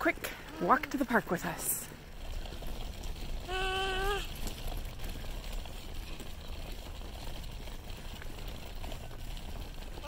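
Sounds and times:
stroller wheels rolling on asphalt: 0.0s - 10.0s.

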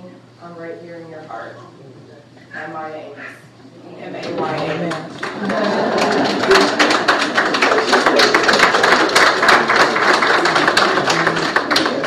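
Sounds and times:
congregation applauding: 4.3s - 12.0s.

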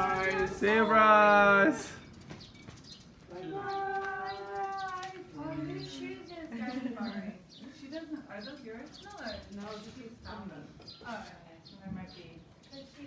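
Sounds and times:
voices calling out: 0.0s - 13.0s.

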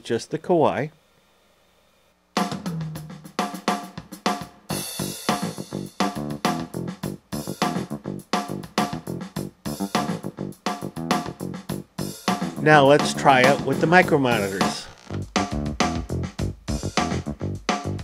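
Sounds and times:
drum kit groove: 2.4s - 18.0s
piano and bass notes: 2.5s - 3.6s, 5.0s - 18.0s.

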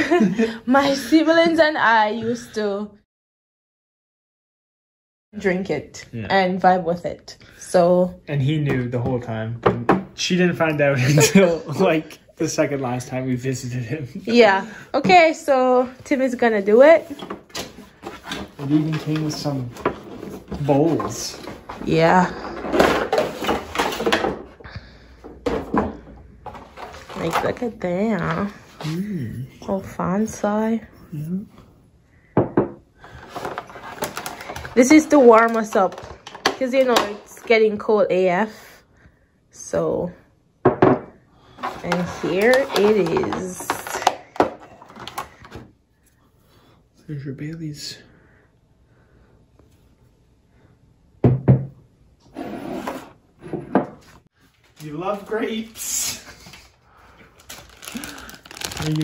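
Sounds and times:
glass and ceramic knocking on wood: 32.4s - 32.8s, 40.6s - 41.1s
tray knocking on wooden table: 51.2s - 51.7s.

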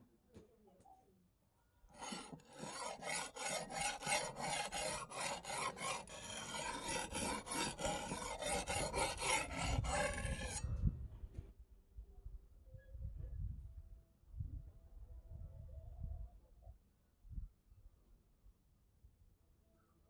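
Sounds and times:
axe blade grinding on whetstone: 2.0s - 10.6s.

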